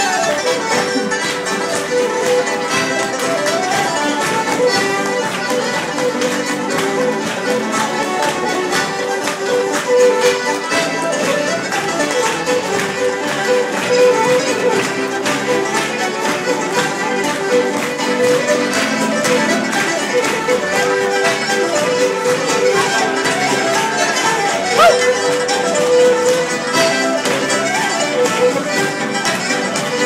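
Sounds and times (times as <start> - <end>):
folk dance tune on accordion: 0.0 - 30.0.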